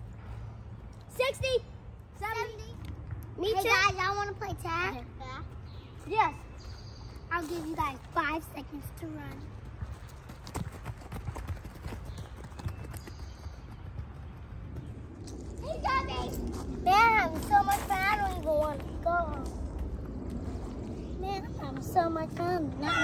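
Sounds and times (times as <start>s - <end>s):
low outdoor rumble: 0.0s - 23.0s
children squealing and shouting: 22.7s - 23.0s.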